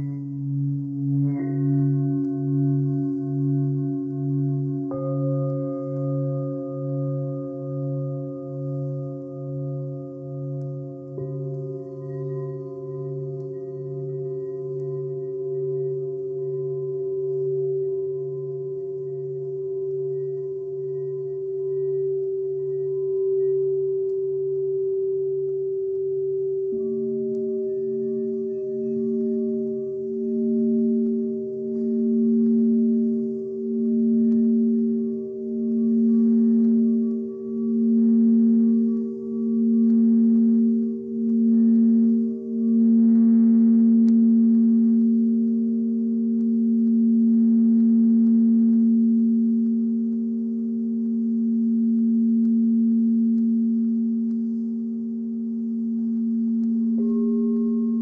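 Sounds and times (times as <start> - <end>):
singing bowls ringing: 0.0 - 58.0.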